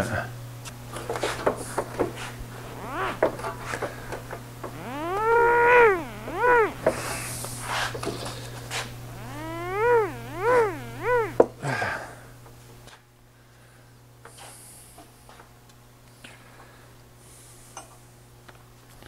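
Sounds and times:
steady low hum: 2.4 - 7.4, 8.9 - 11.4.

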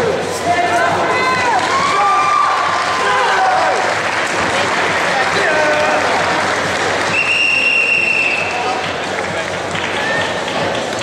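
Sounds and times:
spectators clapping and calling out: 0.1 - 11.0.

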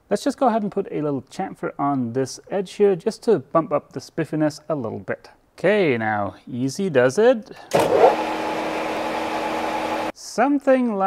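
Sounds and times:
metal lathe motor hum: 7.7 - 10.1.

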